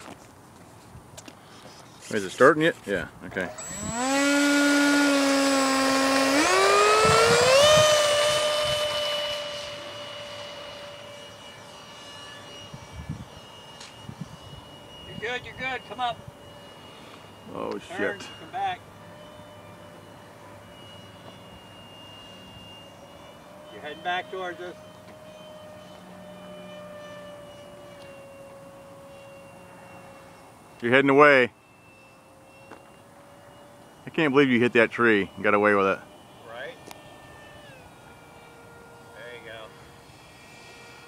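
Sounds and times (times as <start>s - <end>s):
model jet fan whine: 0.0s - 41.0s
wind noise on microphone: 3.6s - 4.8s, 6.4s - 9.3s, 12.6s - 16.4s.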